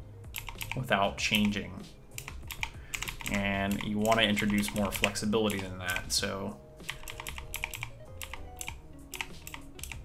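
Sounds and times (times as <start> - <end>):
computer keyboard keys tapping: 0.3 - 1.6, 2.2 - 6.1, 6.8 - 10.0.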